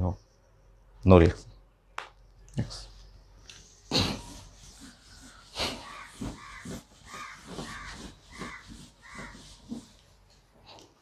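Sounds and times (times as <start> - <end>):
eraser rubbing on whiteboard: 3.6 - 10.5
crow cawing: 5.8 - 9.7.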